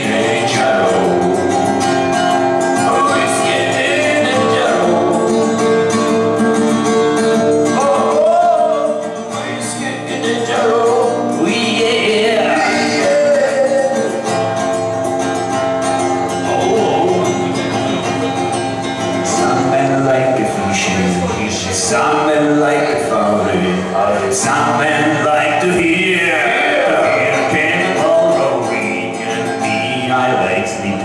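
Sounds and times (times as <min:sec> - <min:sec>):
man singing: 0:00.0 - 0:14.7, 0:16.3 - 0:31.0
acoustic guitar: 0:00.0 - 0:31.0.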